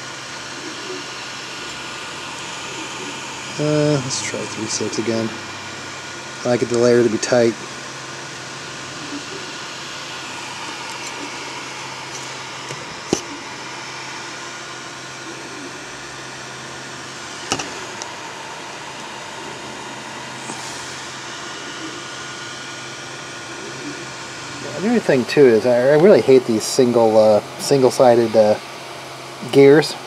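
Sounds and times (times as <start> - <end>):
printer fans whirring: 0.0 - 30.0.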